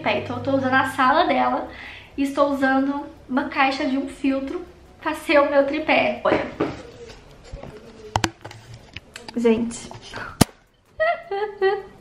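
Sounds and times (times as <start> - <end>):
sharp clicks: 7.2 - 12.0.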